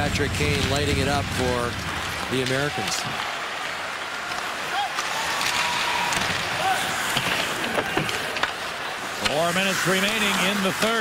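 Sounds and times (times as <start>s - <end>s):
hockey sticks and puck clacking: 0.4s - 11.0s.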